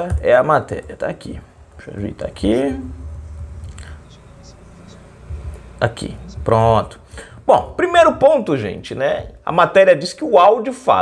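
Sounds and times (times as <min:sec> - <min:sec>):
low room noise: 0:00.0 - 0:11.0
man humming: 0:02.4 - 0:05.6
mouth noises and clicks: 0:03.2 - 0:05.6.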